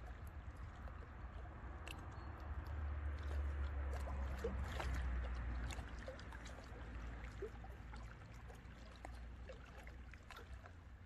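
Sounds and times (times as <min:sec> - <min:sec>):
small waves lapping on rocks: 0:00.0 - 0:11.0.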